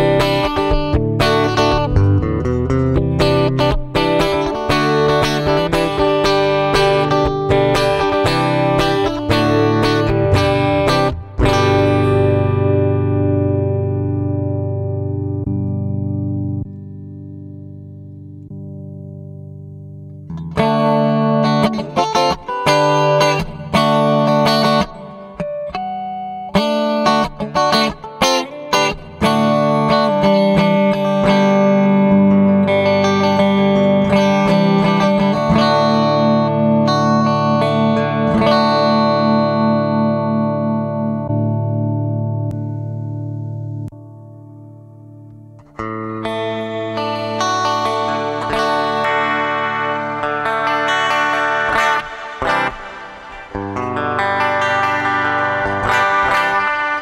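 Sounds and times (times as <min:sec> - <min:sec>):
electric guitar chords: 0:00.0 - 0:57.0.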